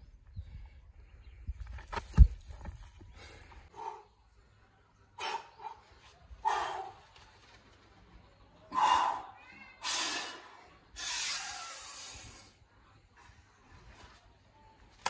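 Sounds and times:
stone thudding onto dirt: 1.6 - 3.0.

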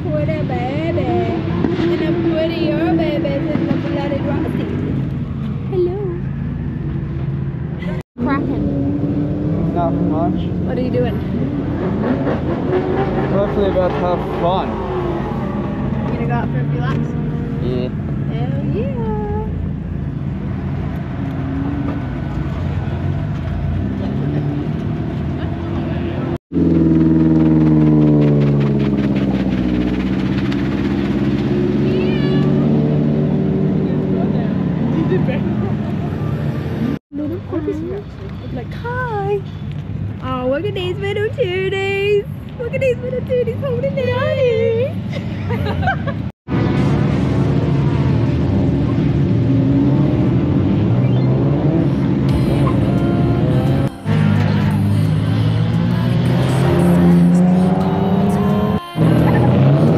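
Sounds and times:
car engines running: 0.0 - 59.9.

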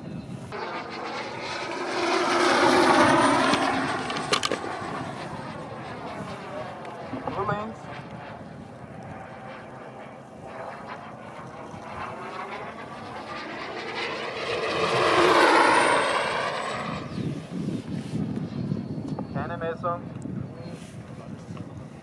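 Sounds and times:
high whine falling in pitch: 0.5 - 6.0
ducted-fan model rushing past: 0.5 - 8.4, 11.0 - 17.9.

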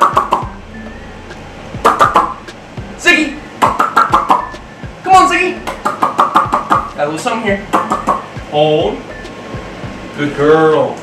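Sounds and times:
music: 0.0 - 11.0
man calling out: 5.0 - 5.6.

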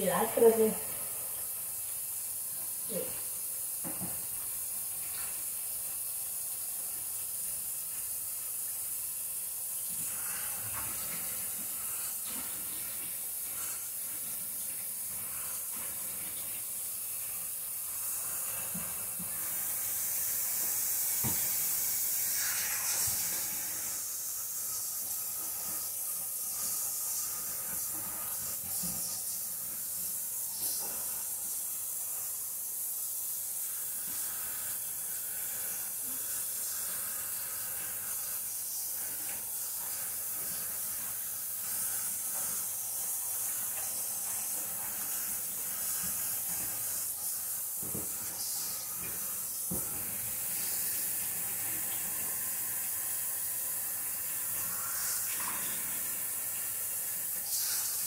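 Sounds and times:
water running from sink tap: 0.0 - 58.0.

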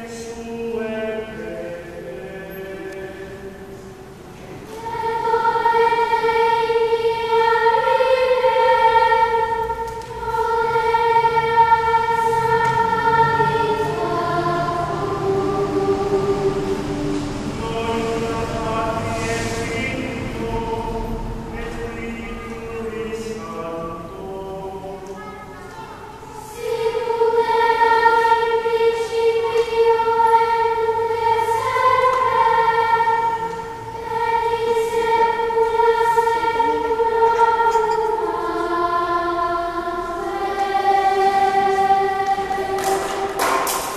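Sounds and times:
children's choir singing: 0.0 - 43.9.

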